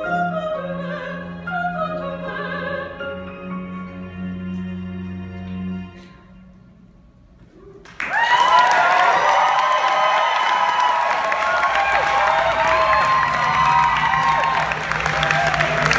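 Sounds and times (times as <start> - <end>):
audience clapping: 7.8 - 15.9
whoops and cheers: 7.8 - 15.9.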